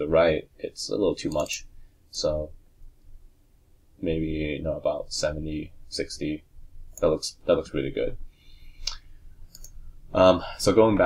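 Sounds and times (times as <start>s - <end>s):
computer mouse clicking: 8.8s - 9.8s.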